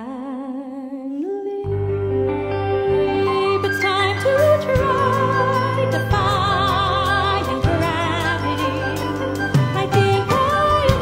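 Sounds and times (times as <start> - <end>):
low bass: 1.7 - 11.0
pop ballad backing: 1.7 - 11.0.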